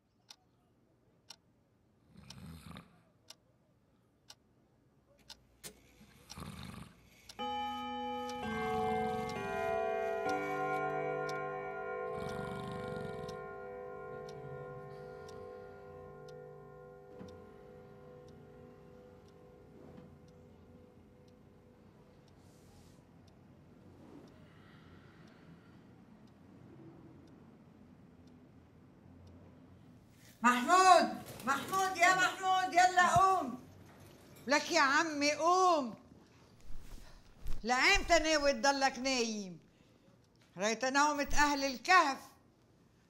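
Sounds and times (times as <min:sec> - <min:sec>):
man snoring: 0:06.2 - 0:07.1, 0:12.2 - 0:13.3
pendulum clock ticking: 0:07.2 - 0:33.6, 0:37.6 - 0:39.3
clock chiming: 0:07.3 - 0:22.4.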